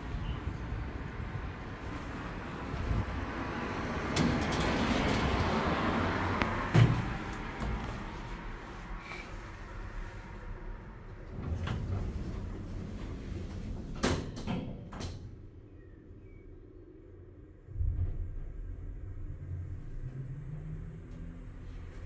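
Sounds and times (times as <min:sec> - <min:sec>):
lift doors sliding shut: 0:01.9 - 0:08.1, 0:10.8 - 0:15.5.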